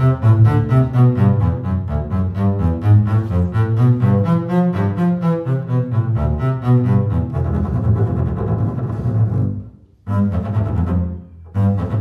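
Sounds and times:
bowed double bass: 0:00.0 - 0:12.0.

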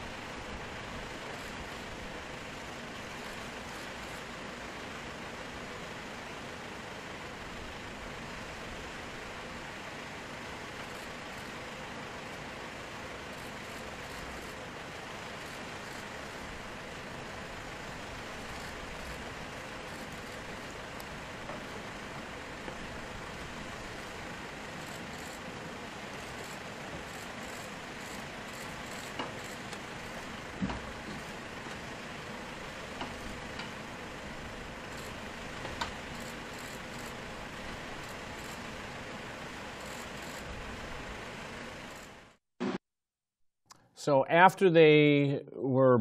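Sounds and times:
aircraft engine hiss and hum: 0:00.0 - 0:42.8.

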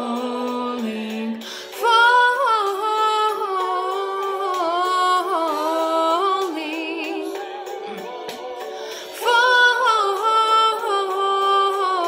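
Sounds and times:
woman singing unaccompanied: 0:00.0 - 0:08.3, 0:09.2 - 0:12.0.

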